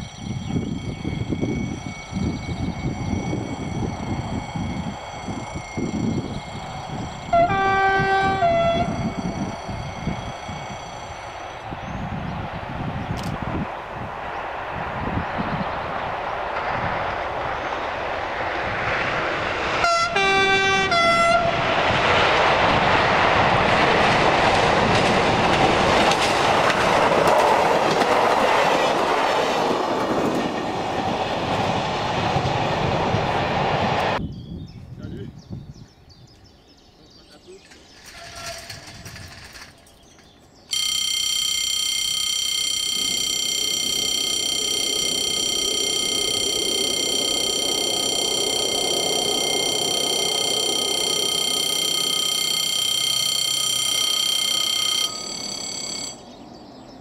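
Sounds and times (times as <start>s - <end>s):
diesel engine and wheels: 0.0s - 34.2s, 37.2s - 57.0s
two-tone train horn: 7.2s - 9.2s, 19.8s - 21.7s, 40.8s - 56.2s.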